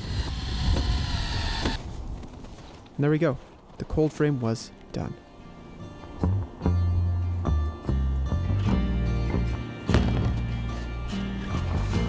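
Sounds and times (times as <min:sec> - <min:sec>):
drill motor whine: 0:00.0 - 0:01.8.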